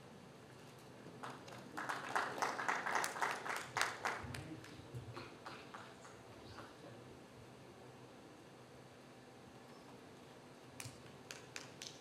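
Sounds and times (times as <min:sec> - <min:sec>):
small audience applauding: 0:01.2 - 0:06.8.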